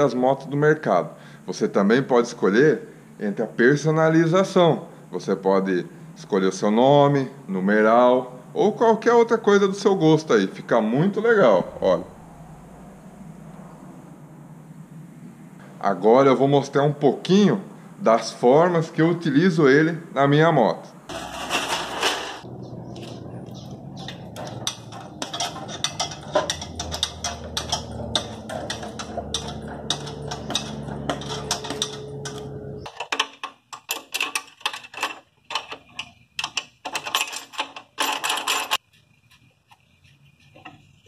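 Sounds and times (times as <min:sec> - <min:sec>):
hydraulic lift metallic clicking: 0:24.0 - 0:35.0.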